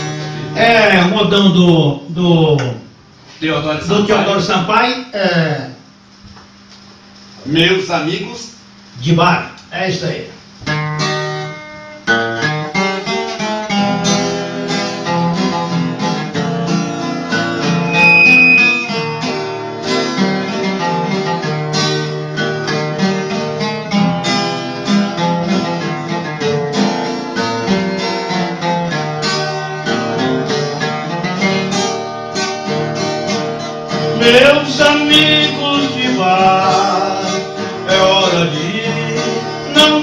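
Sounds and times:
acoustic guitars playing: 0.0s - 4.7s, 10.4s - 40.0s
high steady tone: 17.4s - 19.4s.

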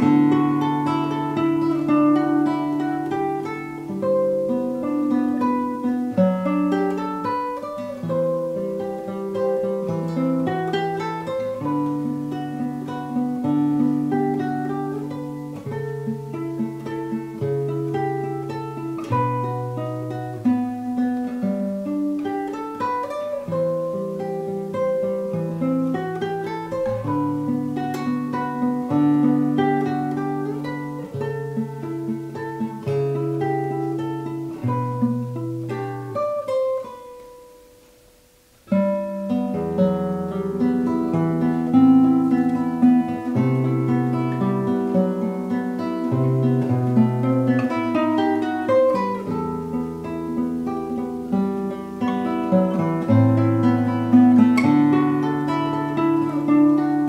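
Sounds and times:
classical guitar fingerstyle: 0.0s - 57.0s.

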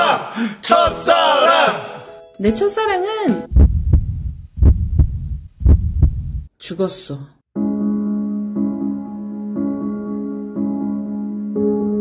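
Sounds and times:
heartbeat thumps: 3.5s - 6.5s.

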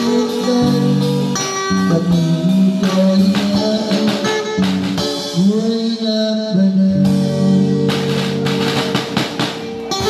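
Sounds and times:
drum and cymbal hits: 0.0s - 5.8s, 7.0s - 10.0s
electric guitar: 0.0s - 10.0s.

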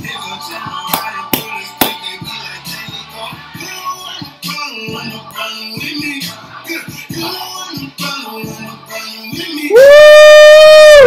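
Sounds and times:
quiet music: 0.0s - 9.7s
man yelling whoo: 9.7s - 11.0s.

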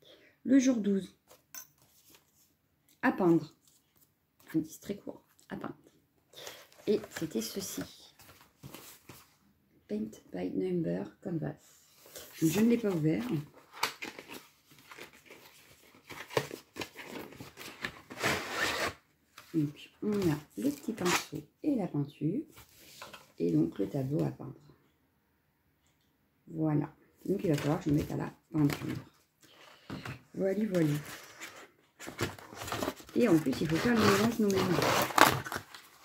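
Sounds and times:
cardboard box handling noises: 30.0s - 36.0s.

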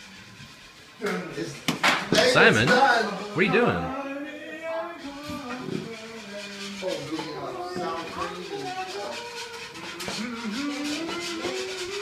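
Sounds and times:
person speaking: 2.2s - 2.8s, 3.4s - 4.0s.

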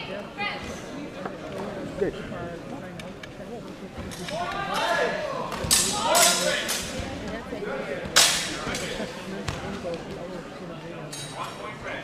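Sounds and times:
steel swords clashing: 5.7s - 6.9s.

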